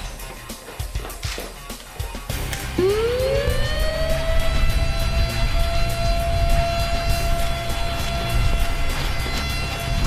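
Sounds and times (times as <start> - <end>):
background music with fast beat: 0.0 - 10.0
heavy bass: 2.3 - 10.0
long held high note: 2.7 - 10.0.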